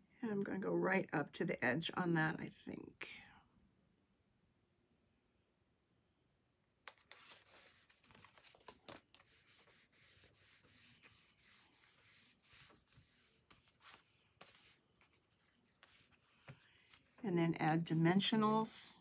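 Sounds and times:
hands rubbing over cardstock: 6.9s - 17.2s.

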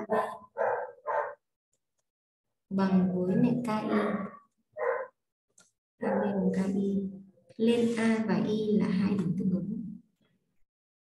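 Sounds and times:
dog barking: 0.0s - 1.4s, 4.0s - 5.2s, 6.0s - 6.4s.

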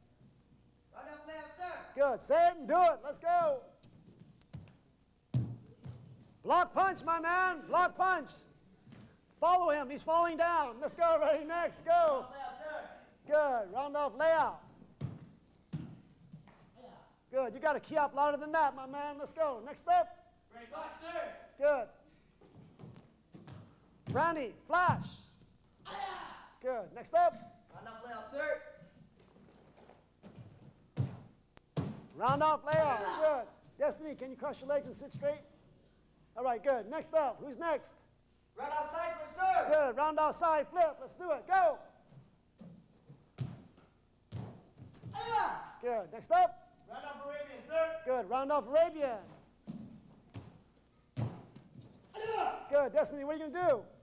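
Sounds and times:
feet thudding onto floor mats: 3.9s - 6.4s, 14.9s - 16.7s, 29.2s - 33.2s, 42.1s - 45.5s, 49.2s - 52.3s
faint short shout: 25.8s - 26.6s, 45.1s - 45.8s, 52.1s - 52.8s.

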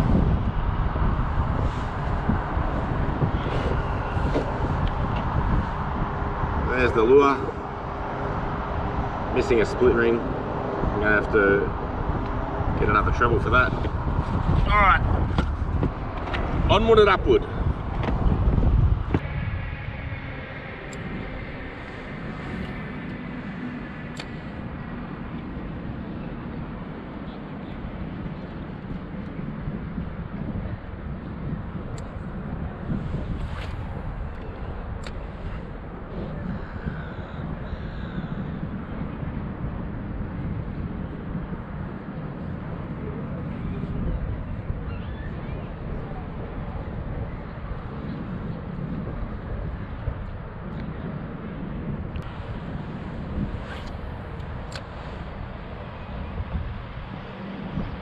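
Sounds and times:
wind buffeting microphone: 0.0s - 58.0s.

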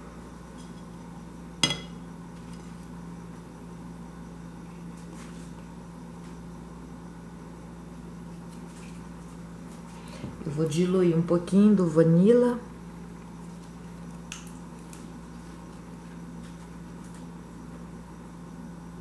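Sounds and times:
steady low hum: 0.0s - 19.0s
glass dish clinking: 1.6s - 2.0s.

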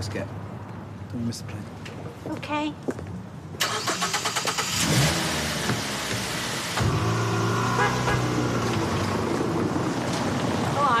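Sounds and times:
car engine starting and running: 3.6s - 11.0s.

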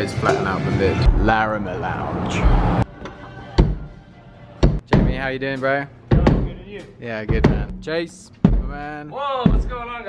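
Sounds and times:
drum hits: 0.2s - 1.4s, 3.6s - 4.0s, 4.6s - 10.0s.

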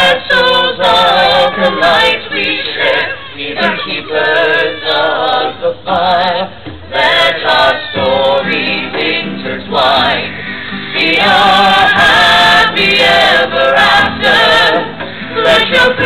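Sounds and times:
mixed chorus singing hymn-like song: 0.0s - 16.0s.

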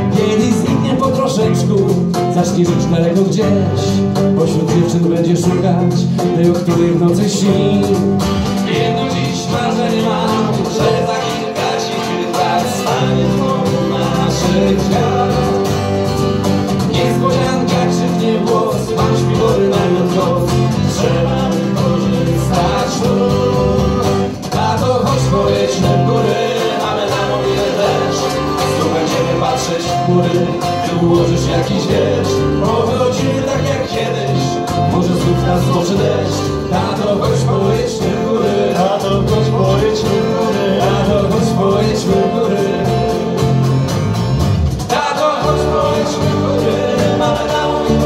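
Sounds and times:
acoustic guitars: 0.0s - 48.0s
cajon: 0.0s - 48.0s.

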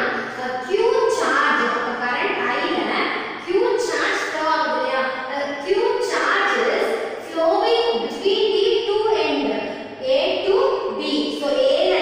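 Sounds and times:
woman lecturing: 0.0s - 12.0s.

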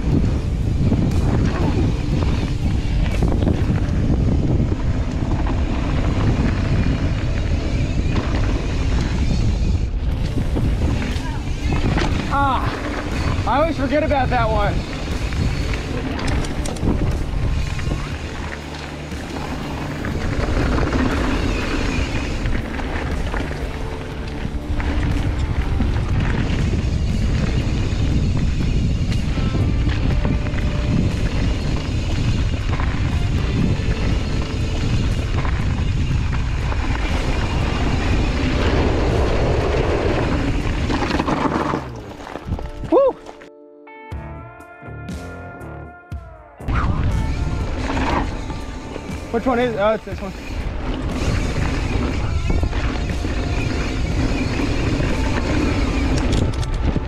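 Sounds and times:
background music: 0.0s - 7.6s, 9.9s - 57.0s
wind rushing across microphone: 0.0s - 43.2s, 46.7s - 57.0s
bike tyres rolling on dirt: 0.0s - 43.5s, 46.7s - 57.0s.

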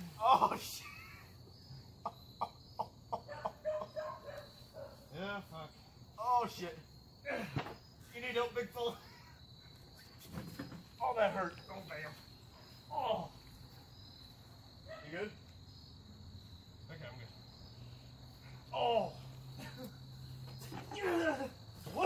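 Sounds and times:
man groaning in pain: 0.0s - 1.0s, 20.9s - 22.0s
crickets chirping: 0.0s - 22.0s.

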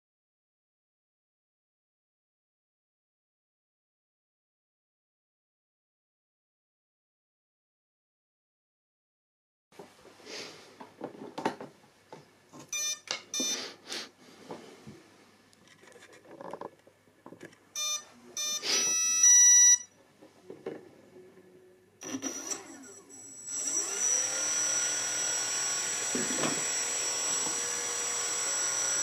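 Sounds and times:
speed controller arming beeps: 12.7s - 13.6s, 17.8s - 19.9s
electric motor spinning propeller: 22.1s - 29.0s.

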